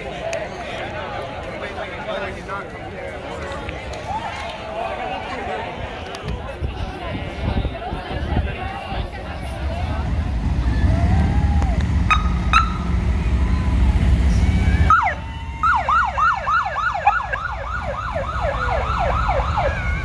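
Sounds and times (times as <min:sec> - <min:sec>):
siren chirps: 0:12.1 - 0:20.0
yelp siren: 0:14.3 - 0:20.0.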